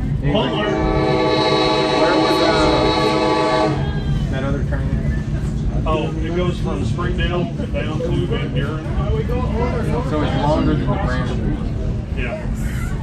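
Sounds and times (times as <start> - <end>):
train running rumble: 0.0 - 13.0
locomotive air horn: 0.4 - 4.0.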